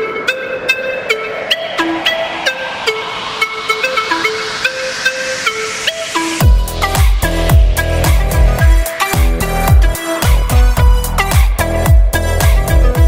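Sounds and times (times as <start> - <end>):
hissing noise sweep: 0.0 - 10.5
plucked synth melody: 0.0 - 13.0.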